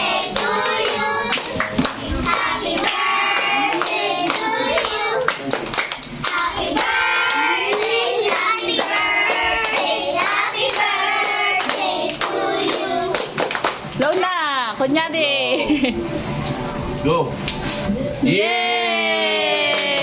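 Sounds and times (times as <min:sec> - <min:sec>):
singing with children's voices: 0:00.0 - 0:05.3, 0:06.3 - 0:13.2
hands clapping in rhythm: 0:00.2 - 0:14.7, 0:19.5 - 0:20.0.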